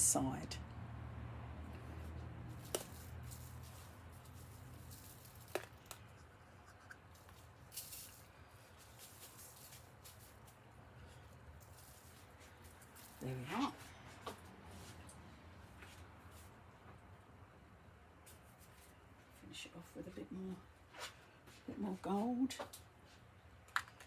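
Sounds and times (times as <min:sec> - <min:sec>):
glitter sprinkled onto canvas: 0:02.5 - 0:10.7.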